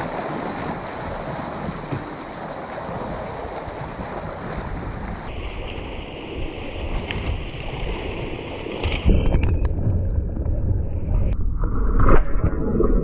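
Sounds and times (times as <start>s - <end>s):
whitewater rushing: 0.0s - 5.3s
wind buffeting microphone: 0.0s - 11.4s.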